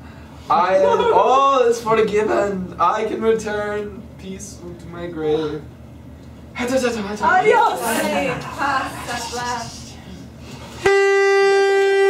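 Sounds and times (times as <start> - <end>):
plastic toy horn buzzing note: 10.8 - 12.0.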